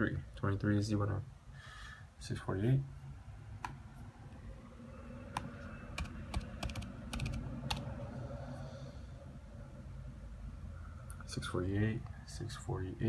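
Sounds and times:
typing on laptop keyboard: 0:05.3 - 0:07.9.

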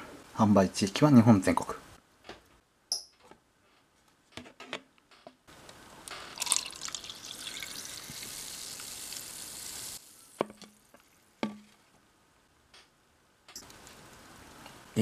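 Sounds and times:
soda fizzing as it pours: 0:06.3 - 0:10.9.

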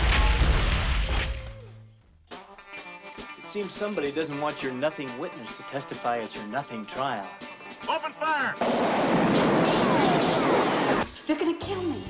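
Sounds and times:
many guns firing: 0:08.6 - 0:11.0.

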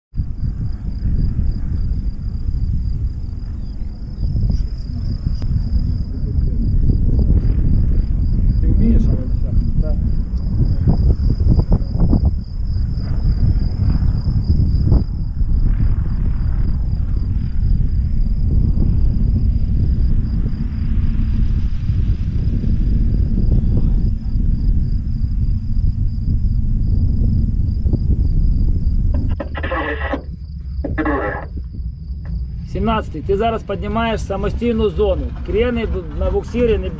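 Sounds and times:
wind buffeting microphone: 0:00.1 - 0:36.9.

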